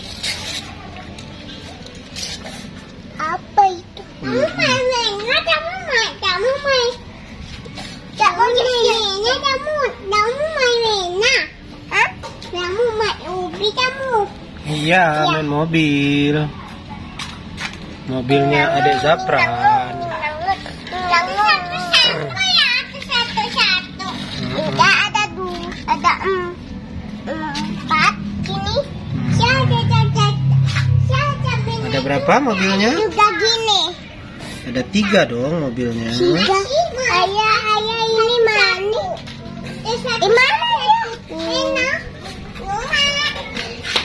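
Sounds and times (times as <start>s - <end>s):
young child making high-pitched sounds: 3.2s - 7.0s, 18.3s - 26.6s, 27.2s - 34.1s, 36.4s - 43.7s
young child babbling: 18.4s - 22.7s.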